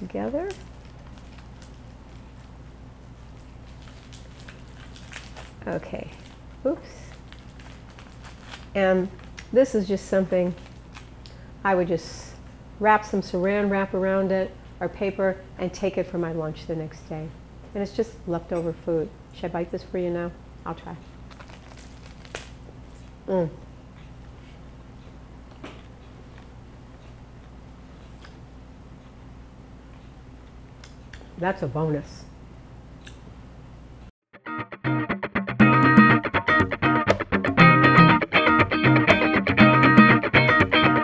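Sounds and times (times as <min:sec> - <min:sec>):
steady low hum: 0:00.0 - 0:34.1.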